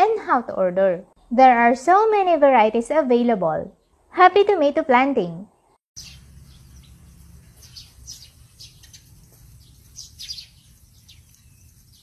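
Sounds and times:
small birds chirping: 5.5 - 12.0.

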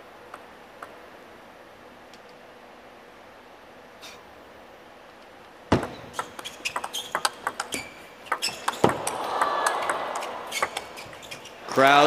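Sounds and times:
table tennis ball clicking: 5.8 - 11.5
crowd oohing and aahing: 8.8 - 11.8.

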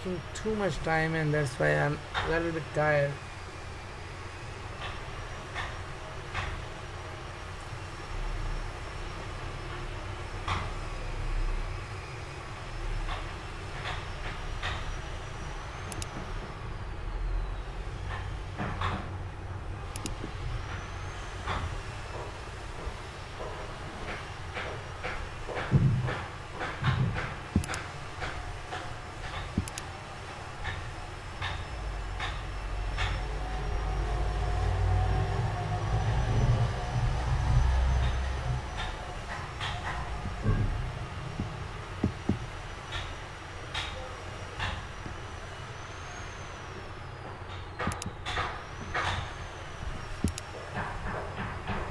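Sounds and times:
low background rumble: 7.8 - 46.8
computer mouse clicks: 15.9 - 16.2, 19.9 - 20.2, 27.6 - 27.8, 29.4 - 29.9, 47.9 - 48.2, 50.2 - 50.5.

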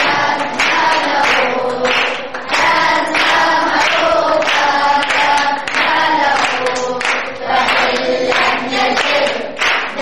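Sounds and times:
group singing in chorus: 0.0 - 10.0.

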